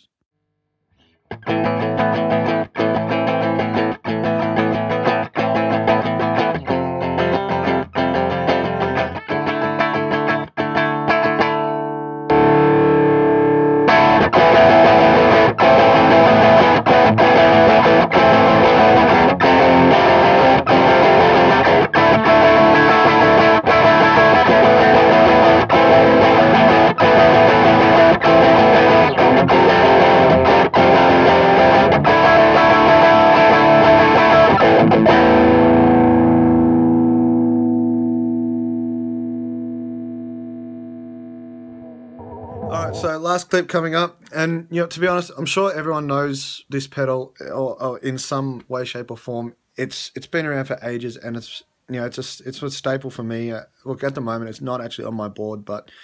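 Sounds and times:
overdriven electric guitar chords: 1.3 - 43.2.

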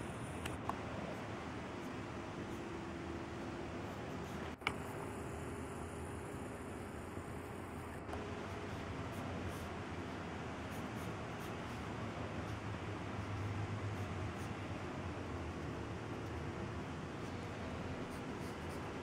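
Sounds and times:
room hum: 0.0 - 19.0
pencil scratching on paper: 17.2 - 19.0.

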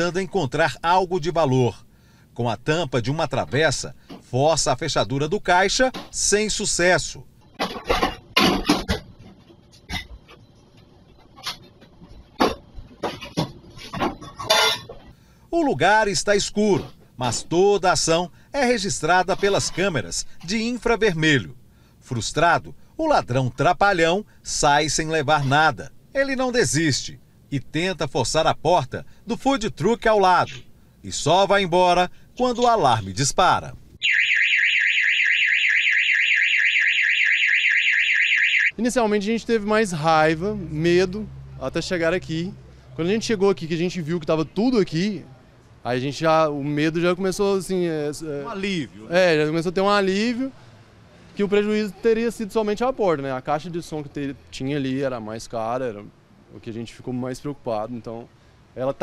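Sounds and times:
metal knocks clanks and scrapes: 7.5 - 10.5, 11.2 - 15.2
burglar alarm siren warbling: 34.0 - 38.8.

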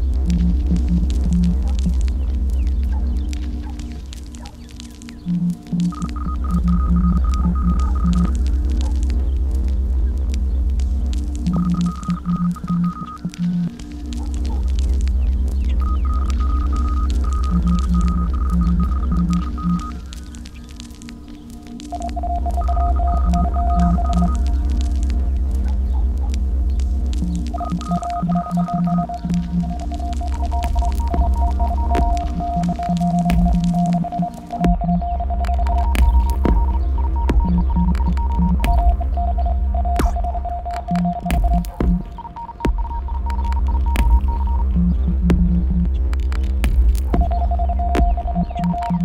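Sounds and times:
deep throbbing electronic hum: 0.0 - 49.0
scattered clicks: 0.2 - 49.0
high electronic tones: 5.3 - 8.4, 11.5 - 13.8, 15.8 - 20.2, 21.9 - 24.8, 27.2 - 46.0, 47.0 - 49.0.

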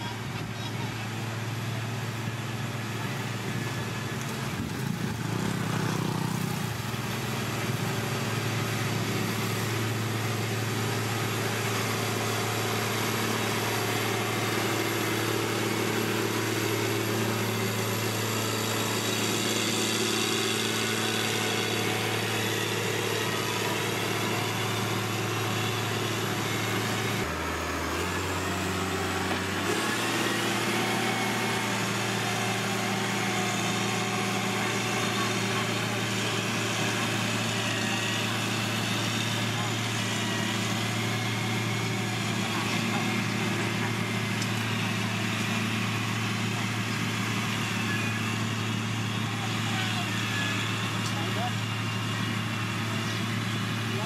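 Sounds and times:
diesel engine running: 0.0 - 54.0.

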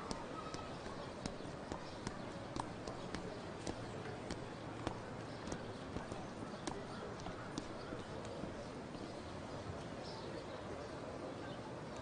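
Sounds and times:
horse hooves on pavement: 0.0 - 8.8
street noise: 0.0 - 12.0.

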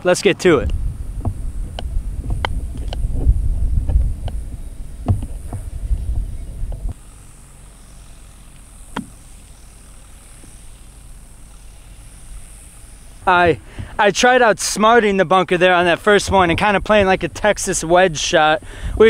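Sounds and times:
wind rumble on microphone: 0.5 - 7.0, 15.8 - 19.0.

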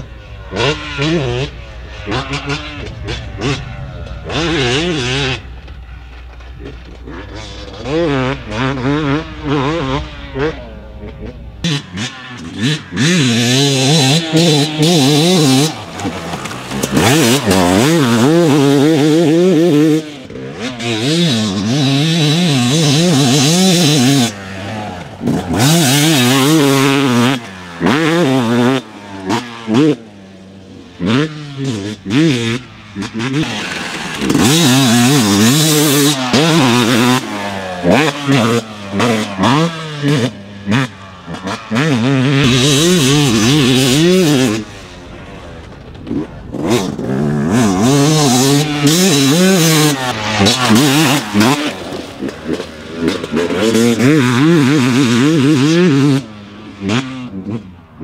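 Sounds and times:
two-stroke motorcycle engine revving: 0.0 - 58.0.

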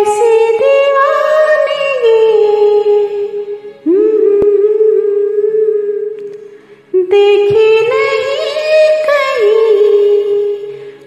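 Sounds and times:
woman singing long notes: 0.0 - 6.2.

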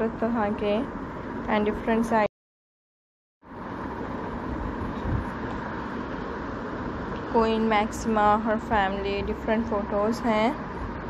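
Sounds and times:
steady rushing noise: 3.4 - 7.4.

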